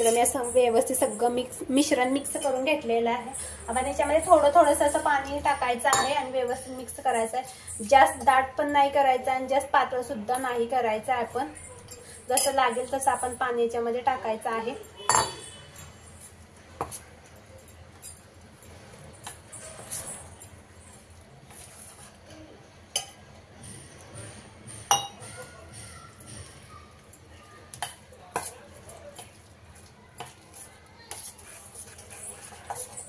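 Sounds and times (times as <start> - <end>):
spoon stirring thick batter: 15.0 - 24.4, 25.3 - 33.0.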